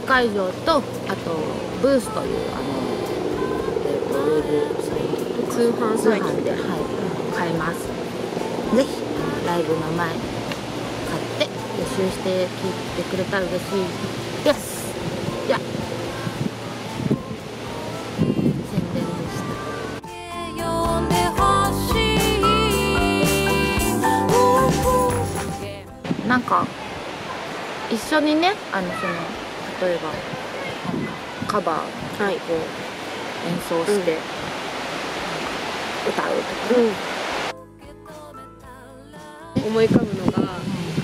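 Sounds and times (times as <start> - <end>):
wind blowing across microphone: 0.0 - 20.0, 26.0 - 37.5, 39.6 - 41.0
soft vocal sounds: 0.0 - 27.8
outdoor rushing hiss: 26.8 - 37.5.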